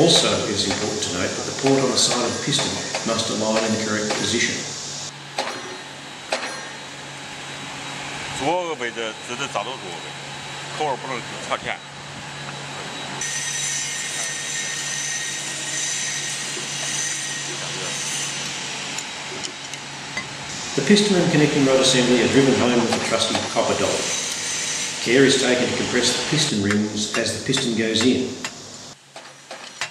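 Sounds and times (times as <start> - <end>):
voices: 0.0 - 5.7, 8.3 - 12.7, 20.7 - 24.1, 25.0 - 28.5
low machine hum: 0.0 - 24.1
hissing whining machine: 0.0 - 29.9.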